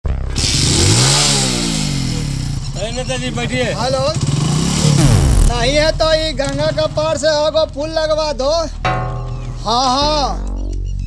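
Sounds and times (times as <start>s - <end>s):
motorcycle engine revving: 0.1s - 5.7s.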